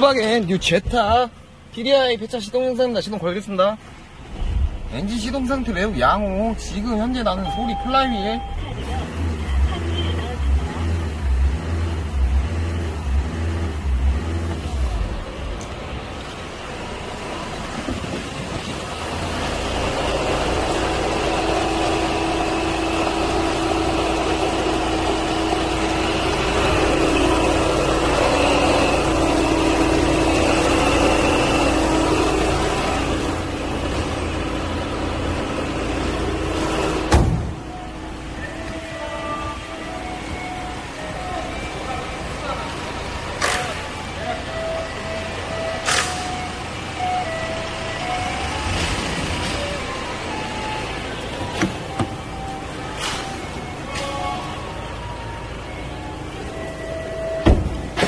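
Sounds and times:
diesel engine idling: 0.0s - 58.0s.

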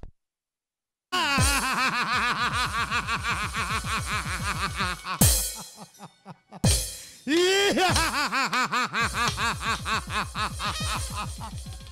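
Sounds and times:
man laughing theatrically: 1.2s - 11.9s.

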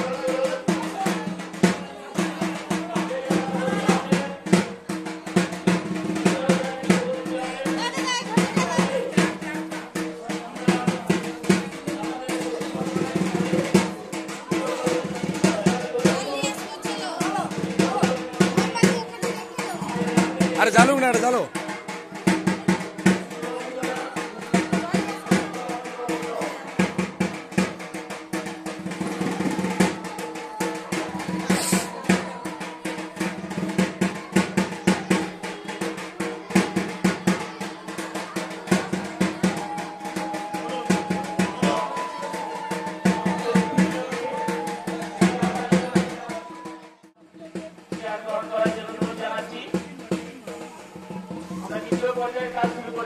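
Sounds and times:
music with fast drumming: 0.0s - 53.0s.

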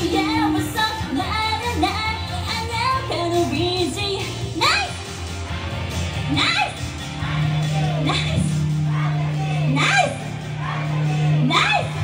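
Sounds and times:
woman singing into microphone: 0.0s - 4.3s.

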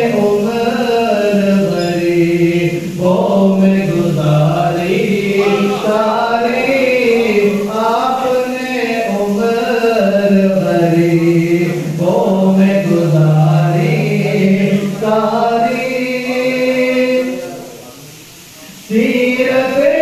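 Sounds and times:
man singing unaccompanied: 0.0s - 18.0s, 18.6s - 20.0s.

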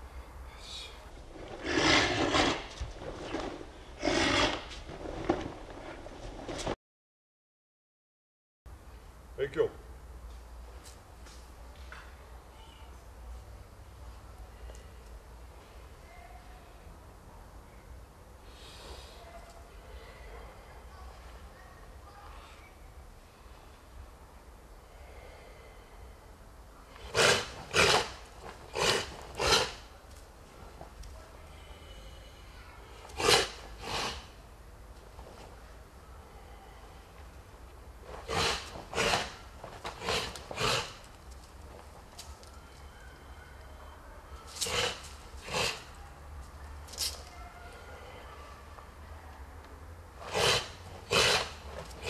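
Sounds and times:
sharp forceful exhalations: 0.6s - 5.4s, 27.0s - 29.9s, 31.6s - 34.4s, 38.1s - 41.1s.

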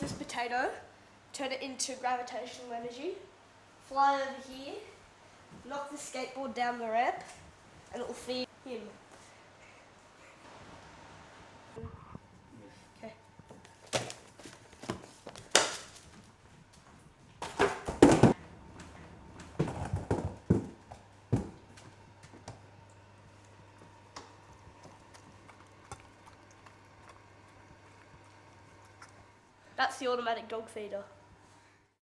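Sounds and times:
books knocking over on table: 13.8s - 16.1s, 17.4s - 21.6s
dog eating from steel bowl: 23.2s - 29.4s.

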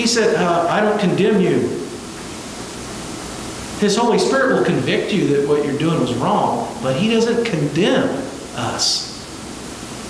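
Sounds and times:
man talking: 0.0s - 1.8s, 3.8s - 9.2s
steady background hiss: 0.0s - 10.0s.

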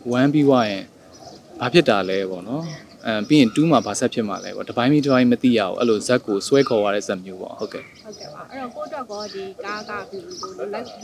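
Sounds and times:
man speaking: 0.0s - 0.9s, 1.6s - 7.9s.

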